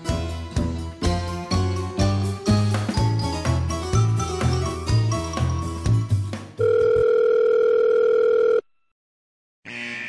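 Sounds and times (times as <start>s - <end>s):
music: 0.0s - 6.6s
telephone ringback tone: 6.6s - 8.7s.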